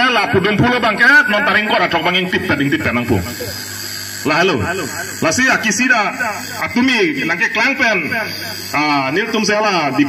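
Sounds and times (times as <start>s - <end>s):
man speaking over public address: 0.0s - 3.6s, 4.2s - 10.0s.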